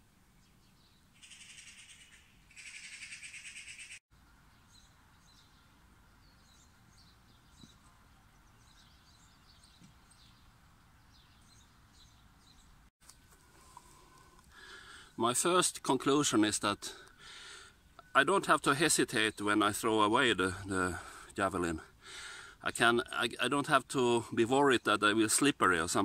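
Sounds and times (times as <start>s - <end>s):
birds chirping: 0.3s - 26.0s.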